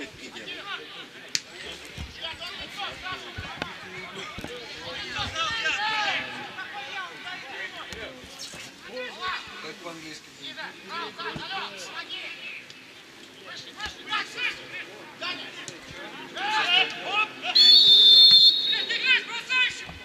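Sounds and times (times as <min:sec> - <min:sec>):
players shouting: 0:00.3 - 0:08.0, 0:13.5 - 0:20.0.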